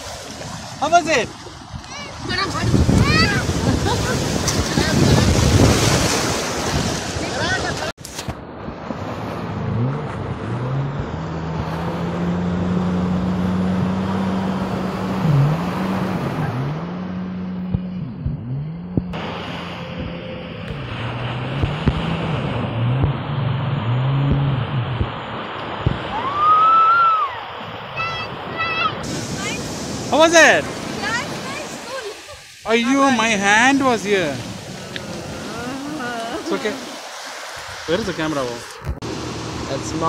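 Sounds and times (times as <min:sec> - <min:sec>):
jet ski engine running: 0:00.0 - 0:07.9, 0:08.8 - 0:26.4, 0:27.4 - 0:40.0
wind noise: 0:00.0 - 0:12.1
surf: 0:00.0 - 0:18.4, 0:19.0 - 0:40.0.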